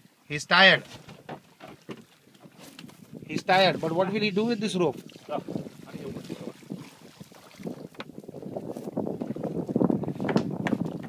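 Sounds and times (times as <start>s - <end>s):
water lapping on boat hull: 0.5s - 11.0s
wind buffeting microphone: 2.3s - 11.0s.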